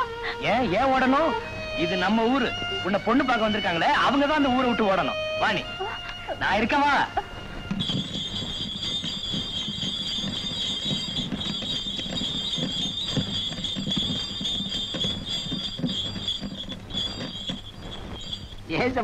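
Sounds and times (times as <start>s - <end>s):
cart squealing: 0.0s - 19.0s.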